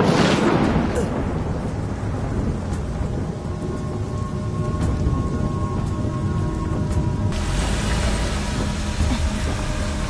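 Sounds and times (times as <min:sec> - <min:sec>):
heavy rain on a car: 0:07.3 - 0:10.0.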